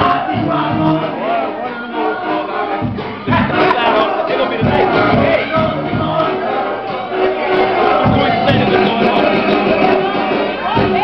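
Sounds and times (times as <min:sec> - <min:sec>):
crowd shouting and cheering: 0:00.0 - 0:11.0
loud music: 0:00.0 - 0:11.0.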